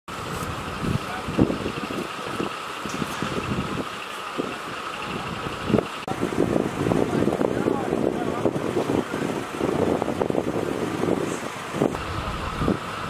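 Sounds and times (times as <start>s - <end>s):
engine running steadily: 0.1s - 13.0s.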